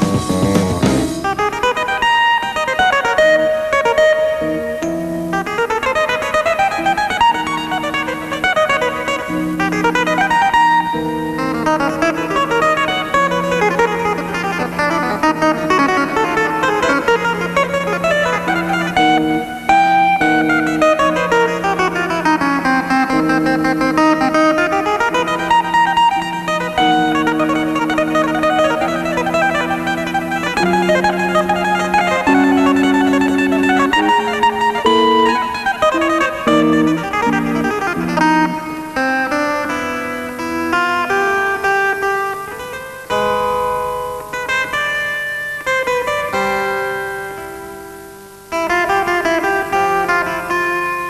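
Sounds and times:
jazz keyboard playing: 0.0s - 10.6s, 11.5s - 39.1s.

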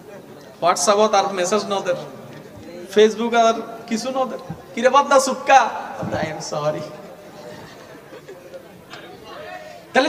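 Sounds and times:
murmur of voices in a hall: 0.0s - 10.0s.

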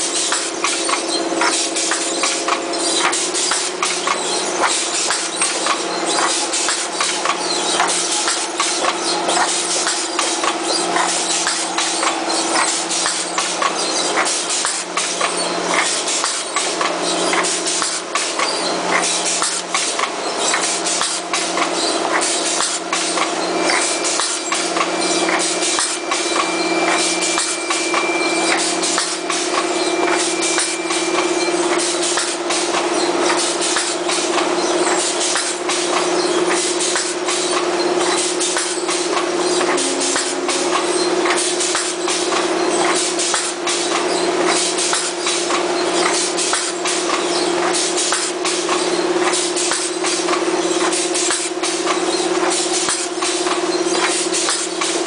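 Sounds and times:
machine humming: 0.0s - 17.9s, 37.6s - 43.7s
rollers clicking and knocking: 0.0s - 55.0s
thin high whine: 39.3s - 42.8s.

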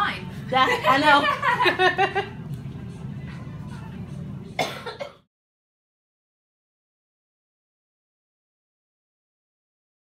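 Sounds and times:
person clearing throat: 4.6s - 5.3s.

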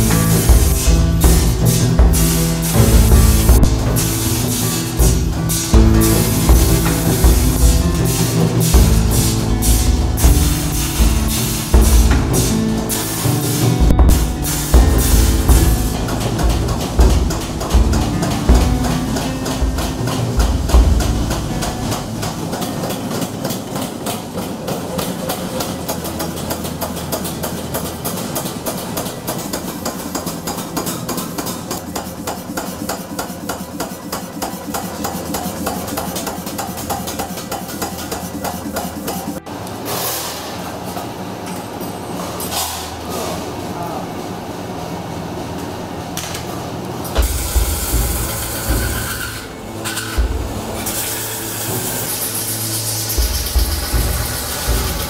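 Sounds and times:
hammer striking brass: 0.0s - 23.0s
workshop noise: 0.0s - 55.0s.

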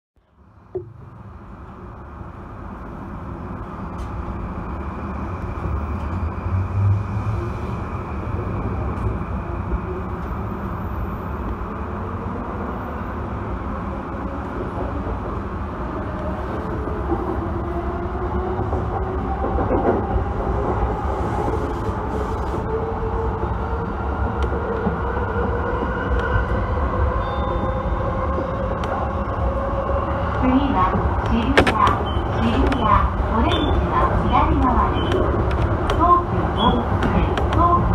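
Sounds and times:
train rumbling on track: 0.2s - 37.9s.

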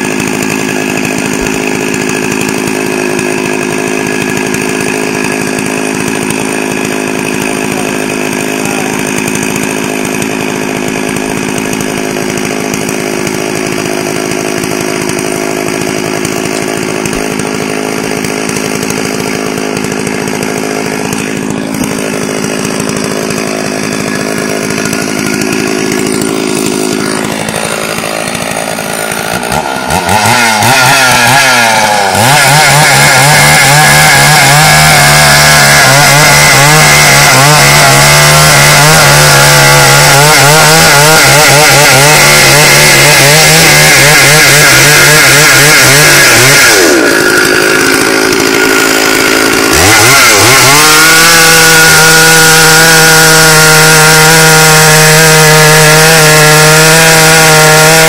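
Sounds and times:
chainsaw running and revving: 0.0s - 58.0s.

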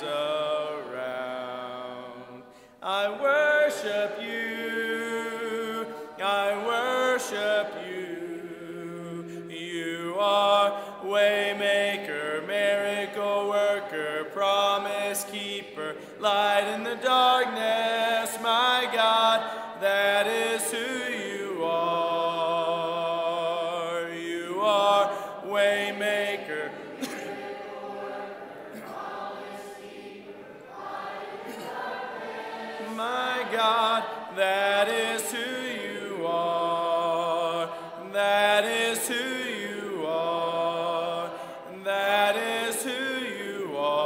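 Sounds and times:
congregation singing a hymn: 0.0s - 44.0s
breaths between phrases: 2.5s - 2.8s, 25.1s - 25.4s.

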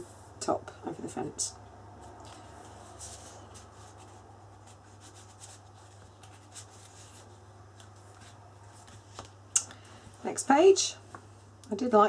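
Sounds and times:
paper rustling and scraping: 2.0s - 9.4s.

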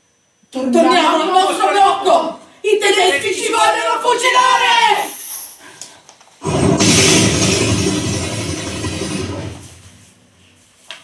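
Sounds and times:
loud rushing blast: 6.4s - 10.1s.

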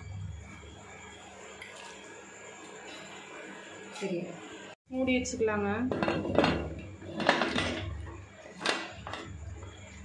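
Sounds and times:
metal lid clanking and scraping: 5.8s - 9.4s.

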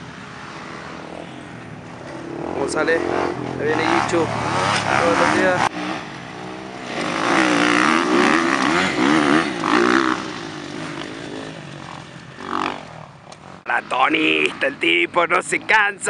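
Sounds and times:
dirt bike engine revving: 0.3s - 15.7s.

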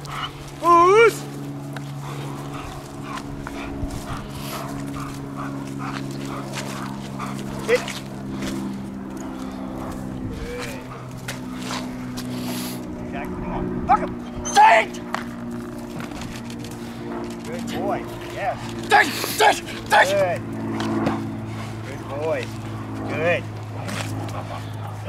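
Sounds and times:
low drone: 0.0s - 25.0s.

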